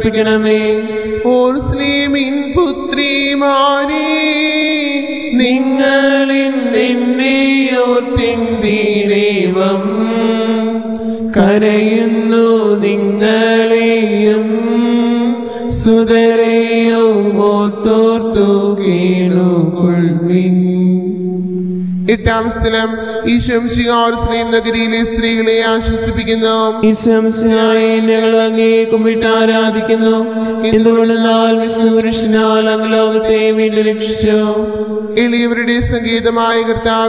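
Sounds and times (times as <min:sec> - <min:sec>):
slow devotional hymn music: 0:00.0 - 0:37.0
steady low drone: 0:00.0 - 0:37.0.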